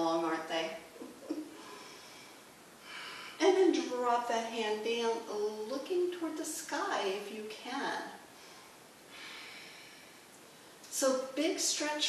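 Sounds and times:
faint breathing: 1.5s - 3.4s, 8.3s - 10.8s.

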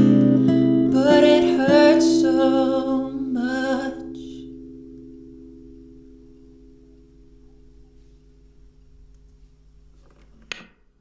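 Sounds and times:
acoustic guitar chord ringing: 0.0s - 9.1s.

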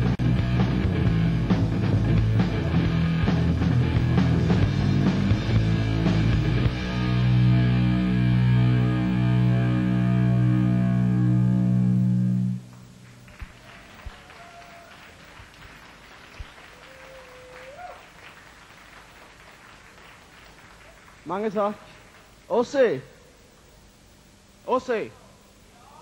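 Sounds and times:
electric guitar and bass chord: 0.0s - 13.1s.

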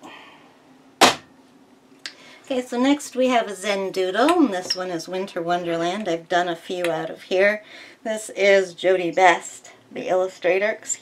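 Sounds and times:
book thudding onto pile: 1.0s - 1.3s.

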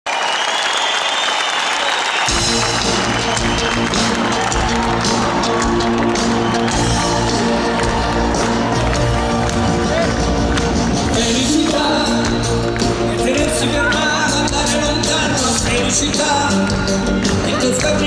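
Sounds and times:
audience applauding: 0.0s - 18.0s
live band playing: 2.3s - 18.0s.

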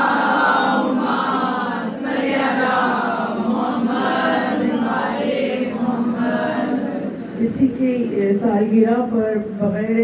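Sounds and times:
group singing in unison: 0.0s - 7.2s.

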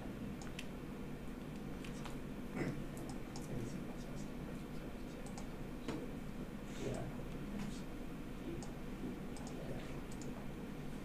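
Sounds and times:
faint low room noise: 0.0s - 11.0s
computer mouse clicking: 0.4s - 0.7s, 3.0s - 3.5s, 5.2s - 5.5s, 9.4s - 10.4s.

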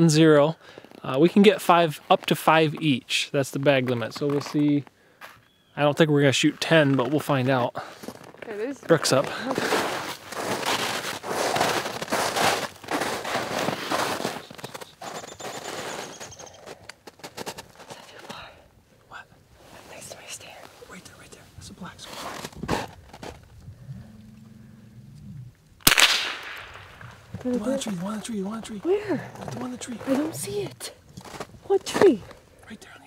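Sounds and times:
footsteps crunching through snow: 6.7s - 18.6s, 21.9s - 23.5s, 27.0s - 32.4s
faint whispering: 17.9s - 22.3s, 32.6s - 33.0s
sharp loud crack: 25.8s - 27.2s.

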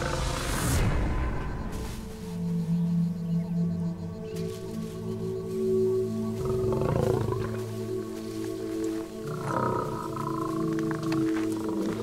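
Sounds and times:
background music: 0.0s - 12.0s
lion growling: 6.4s - 7.6s, 9.2s - 12.0s.

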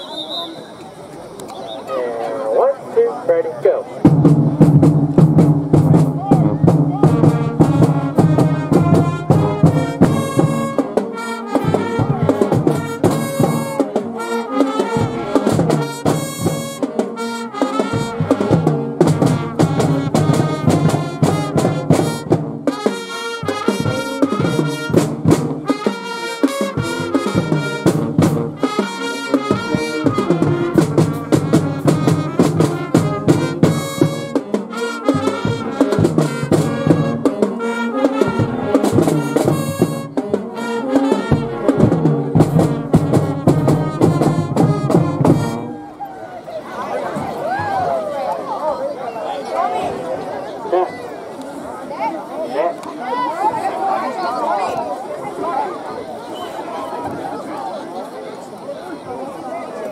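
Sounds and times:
brass and saxophones playing: 1.8s - 46.0s
steady drum beat: 4.0s - 45.7s.

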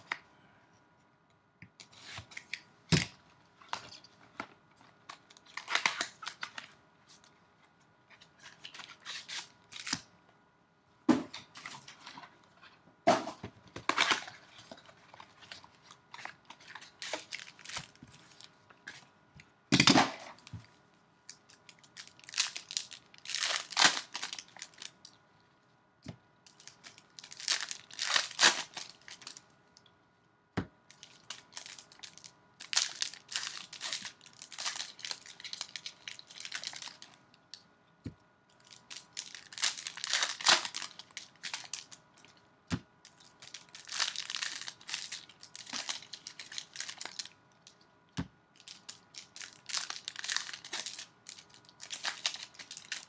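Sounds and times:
foil wrappers tearing and crinkling: 5.4s - 6.6s, 15.4s - 18.5s, 21.8s - 25.0s, 26.5s - 29.4s, 30.9s - 37.2s, 38.6s - 42.0s, 43.1s - 47.4s, 48.6s - 53.0s.

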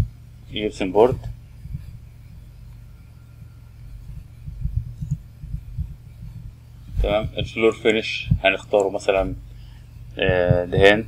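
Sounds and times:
dull low thumps: 0.0s - 11.0s
low electrical hum: 0.0s - 11.0s.

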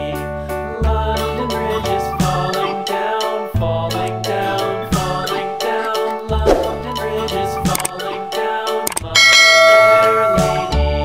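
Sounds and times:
background music: 0.0s - 11.0s
bright bell chime: 9.2s - 10.7s.

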